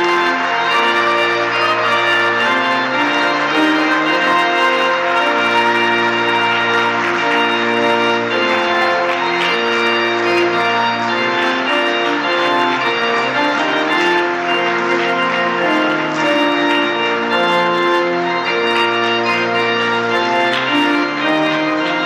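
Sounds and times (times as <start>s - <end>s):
church organ chords: 0.0s - 22.0s.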